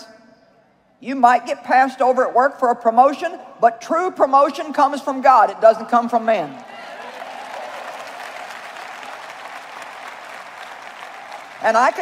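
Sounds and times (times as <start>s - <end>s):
audience applauding: 6.6s - 12.0s.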